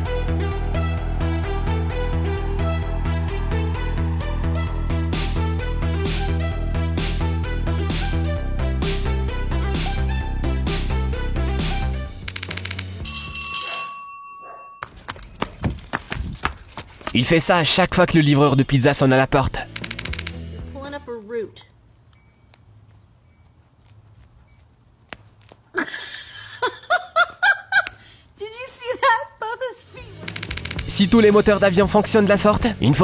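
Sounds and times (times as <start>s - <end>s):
electronic doorbell chime: 13.0s - 14.9s
person laughing: 25.7s - 28.2s, 28.8s - 30.1s.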